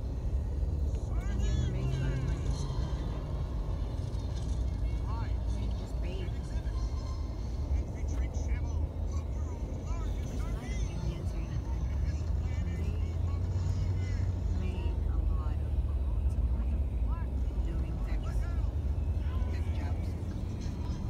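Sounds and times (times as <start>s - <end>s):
engine and tyre rumble in car: 0.0s - 21.0s.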